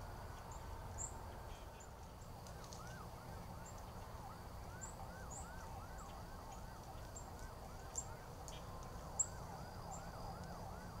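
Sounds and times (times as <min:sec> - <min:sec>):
distant siren sweeping in pitch: 0:02.2 - 0:11.0.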